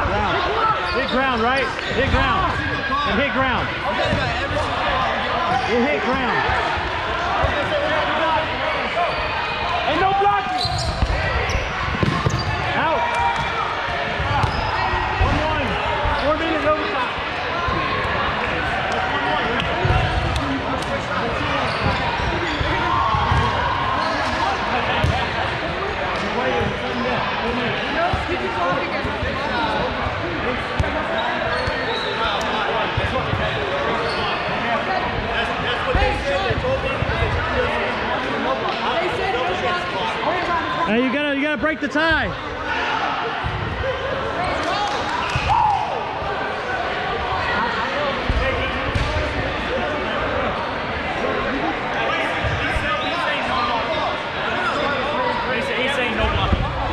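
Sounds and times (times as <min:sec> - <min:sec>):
players shouting and talking: 0:00.0 - 0:56.9
dodgeballs thudding on hardwood: 0:11.9 - 0:12.6.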